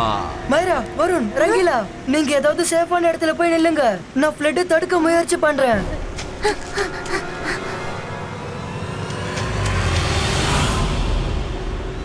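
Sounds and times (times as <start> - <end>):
background music: 0.0 - 12.0
rushing rumbling sound effect: 8.5 - 12.0.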